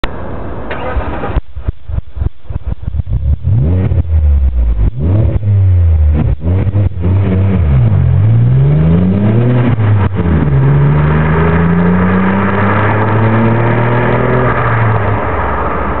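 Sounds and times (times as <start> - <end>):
car engine revving and accelerating: 2.6 - 16.0.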